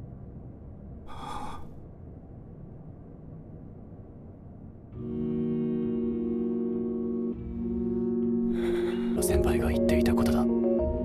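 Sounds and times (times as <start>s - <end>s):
low background rumble: 0.0s - 11.0s
man gasping: 1.1s - 1.8s, 8.5s - 9.2s.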